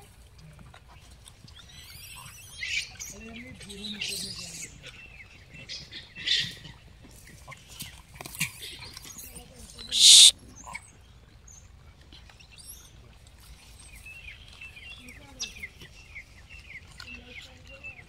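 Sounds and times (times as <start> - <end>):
small birds chirping: 9.9 - 10.3.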